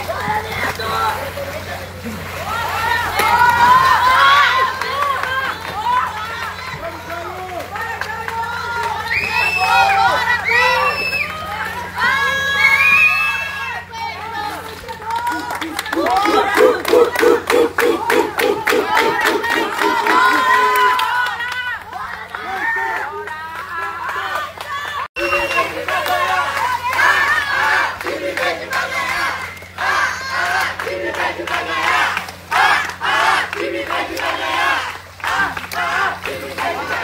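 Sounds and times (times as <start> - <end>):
young people shouting and cheering: 0.0 - 37.0
fast rhythmic clapping: 3.2 - 10.3, 14.5 - 37.0
rhythmic chanting: 14.6 - 21.2, 25.2 - 37.0.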